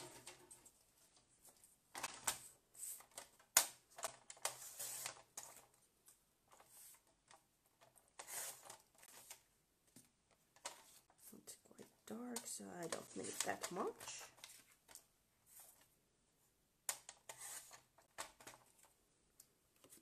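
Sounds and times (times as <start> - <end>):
paper rustling: 0.0 - 11.4, 12.2 - 16.0.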